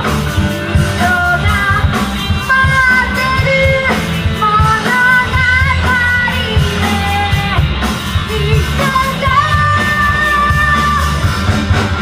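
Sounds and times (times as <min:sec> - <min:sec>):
drums: 0:00.0 - 0:12.0
electric guitar: 0:00.0 - 0:12.0
woman singing: 0:00.6 - 0:11.4.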